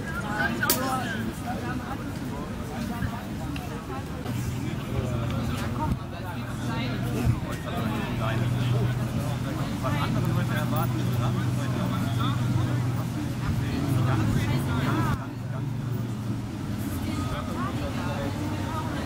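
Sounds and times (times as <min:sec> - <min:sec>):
people chattering: 0:00.0 - 0:19.0.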